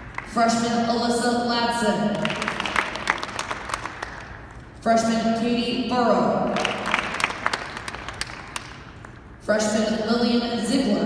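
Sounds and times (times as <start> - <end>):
audience applauding: 2.2 - 4.4, 6.6 - 8.8.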